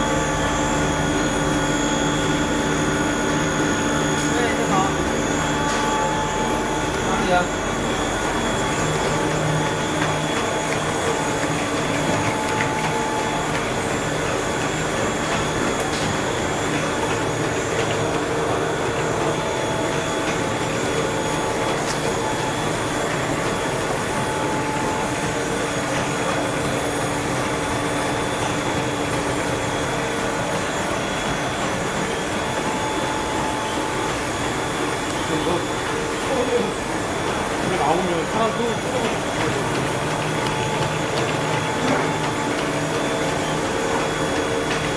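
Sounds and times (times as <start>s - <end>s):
production line mechanical noise: 0.0s - 44.9s.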